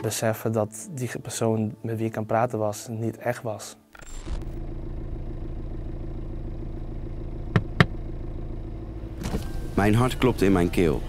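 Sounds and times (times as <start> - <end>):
car engine humming: 4.0 - 11.0.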